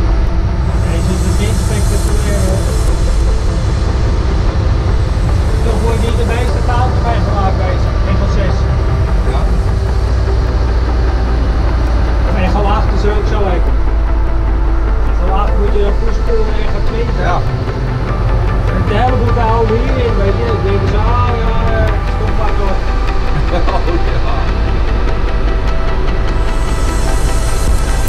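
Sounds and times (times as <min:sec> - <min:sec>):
tug engine low rumble: 0:00.0 - 0:28.0.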